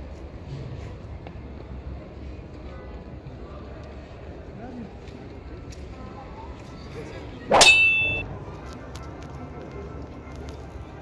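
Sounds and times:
metallic clang: 7.5s - 8.2s.

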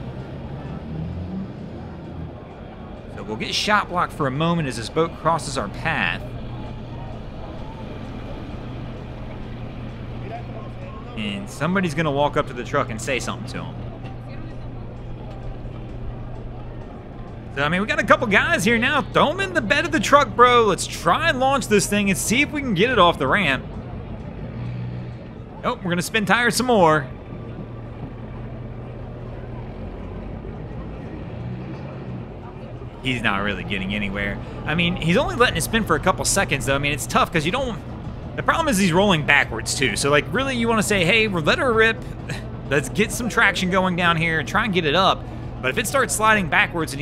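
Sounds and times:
engine idling: 0.0s - 47.0s
outdoor background noise: 0.0s - 47.0s.

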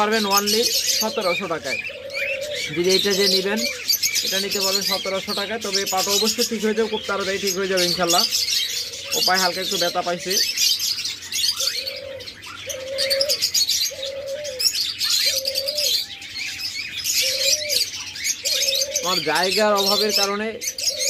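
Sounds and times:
cage birds chirping: 0.0s - 21.0s
dove cooing: 0.0s - 21.0s.

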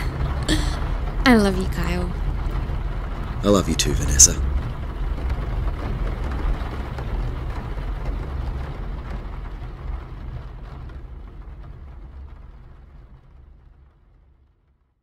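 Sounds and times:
car engine and road rumble: 0.0s - 13.9s.

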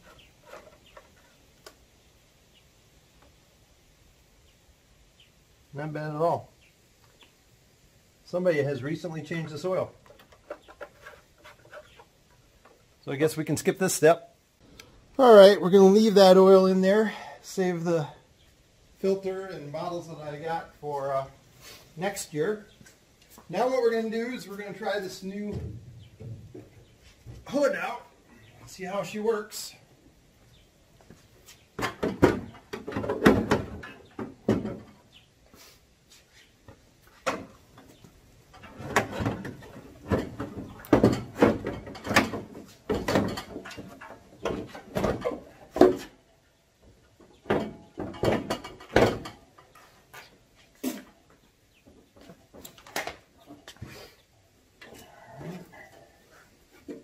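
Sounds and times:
plastic hood clunking and rattling: 31.8s - 35.0s, 38.5s - 46.1s, 47.2s - 49.6s.

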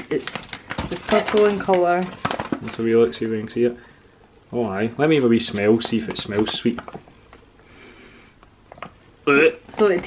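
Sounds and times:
foil pouch crinkling: 0.0s - 3.6s
person sniffing: 7.6s - 8.4s.

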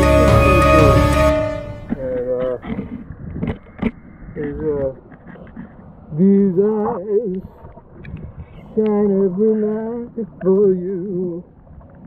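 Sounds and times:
man singing wavering note: 0.0s - 2.2s.

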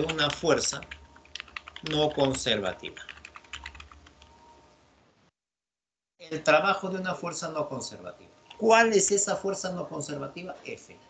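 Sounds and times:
computer keyboard typing: 0.0s - 4.4s.

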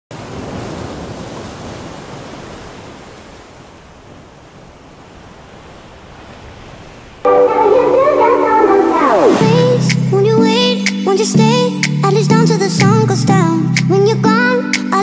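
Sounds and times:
ocean surf washing in: 0.1s - 12.8s
music: 7.3s - 15.0s.

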